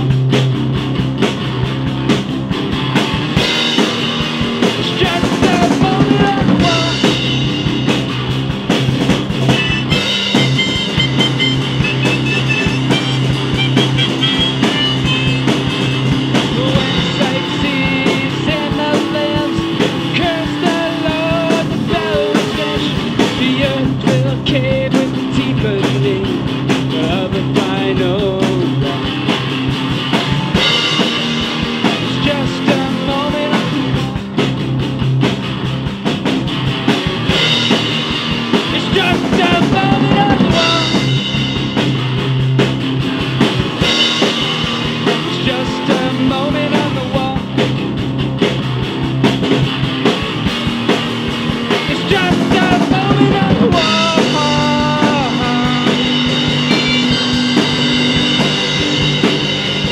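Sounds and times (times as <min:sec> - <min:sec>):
rock band playing: 0:00.0 - 0:59.9.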